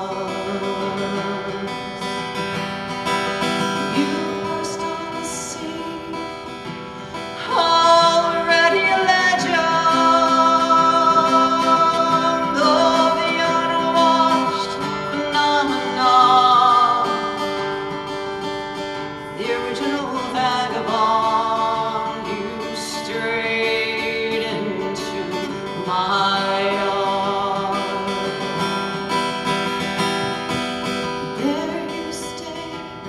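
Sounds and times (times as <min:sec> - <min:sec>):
strummed acoustic guitar: 0:00.0 - 0:33.0
woman singing a folk ballad: 0:00.0 - 0:33.0.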